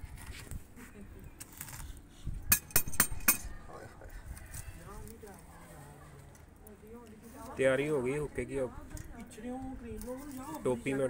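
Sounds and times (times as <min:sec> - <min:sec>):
tongs clinking on charcoal: 0:02.5 - 0:03.6, 0:08.9 - 0:11.0.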